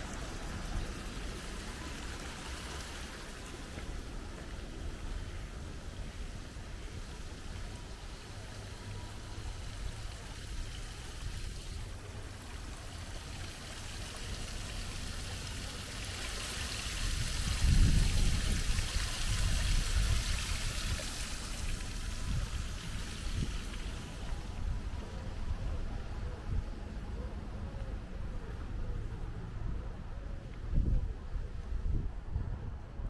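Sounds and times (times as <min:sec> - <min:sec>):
stream trickling over stones: 0:00.0 - 0:25.0.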